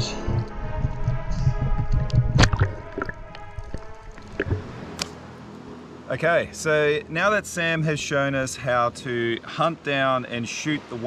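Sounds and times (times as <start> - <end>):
background music held tones: 0.0 - 11.0
water sloshing and splashing: 2.2 - 5.2.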